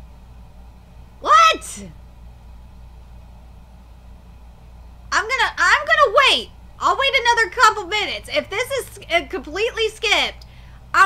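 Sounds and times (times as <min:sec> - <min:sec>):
faint low hum with hiss: 0:00.0 - 0:11.0.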